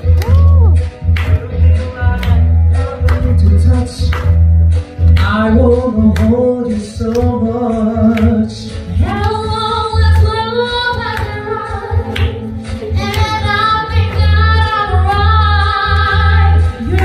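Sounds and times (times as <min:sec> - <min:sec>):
backing music with bass pulse: 0:00.0 - 0:17.0
woman singing into a microphone: 0:08.9 - 0:17.0.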